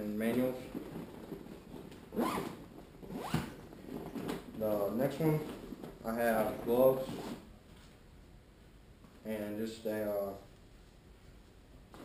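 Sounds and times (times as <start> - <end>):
zipper being pulled: 2.1 - 4.4.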